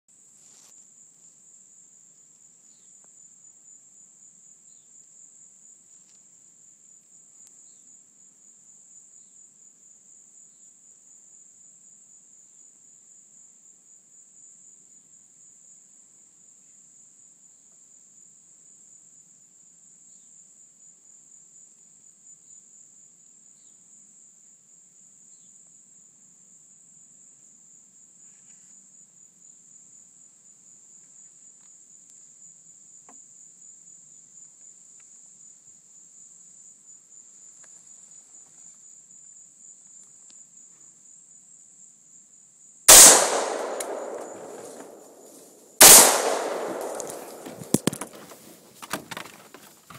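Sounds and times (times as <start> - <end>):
rifle shot with echo: 42.9 - 48.2.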